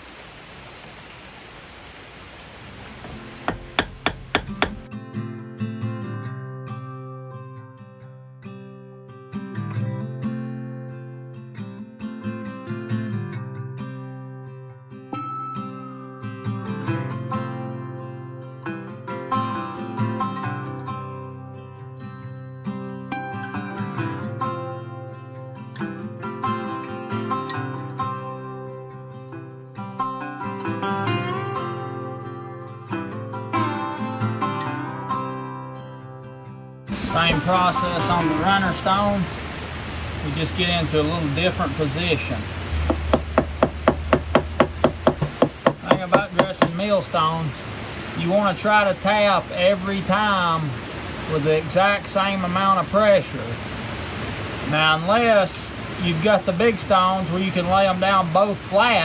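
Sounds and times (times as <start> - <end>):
bush hammer tapping stone: 3.0 - 4.9, 42.9 - 46.8
plucked-string background music: 3.1 - 46.9.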